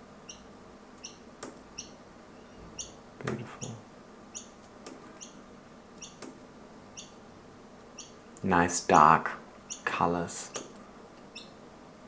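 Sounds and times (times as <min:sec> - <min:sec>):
bird chirping: 0:00.2 - 0:01.2, 0:01.8 - 0:05.4, 0:06.0 - 0:06.3, 0:06.9 - 0:07.2, 0:08.0 - 0:08.2, 0:09.7 - 0:09.9, 0:11.3 - 0:11.6.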